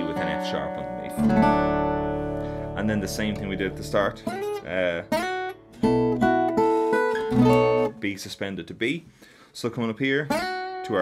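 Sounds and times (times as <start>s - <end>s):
acoustic guitar fingerpicked: 0.0s - 8.0s, 10.3s - 10.9s.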